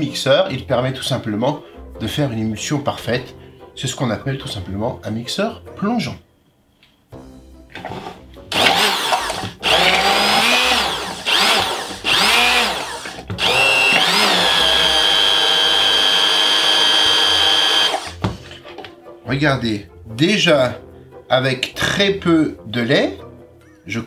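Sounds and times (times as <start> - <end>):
immersion blender motor whine: 8.5 - 18.2.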